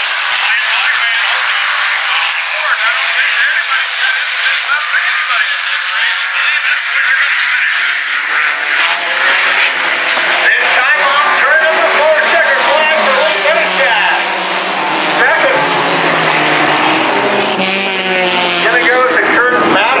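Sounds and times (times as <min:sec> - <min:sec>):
race car engines revving: 0:00.0 - 0:20.0.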